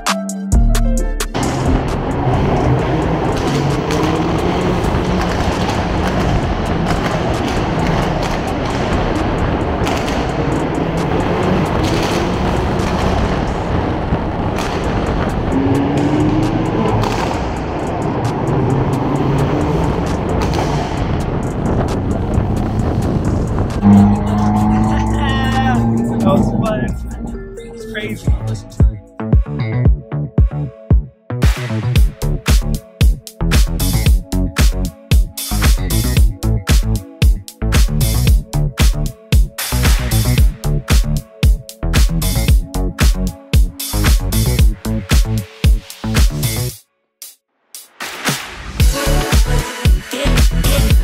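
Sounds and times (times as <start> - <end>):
exhaust cracks: 1.4 - 27.3
car engines echoing in tunnel: 1.4 - 28.3.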